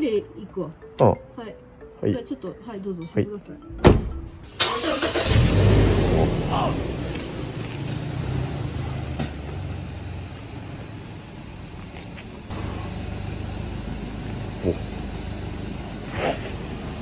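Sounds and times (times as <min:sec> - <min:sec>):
car engine starting and idling: 0:03.7 - 0:17.0.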